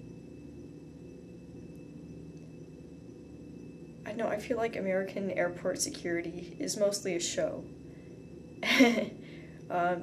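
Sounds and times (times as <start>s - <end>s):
low hum and faint hiss: 0.0s - 10.0s.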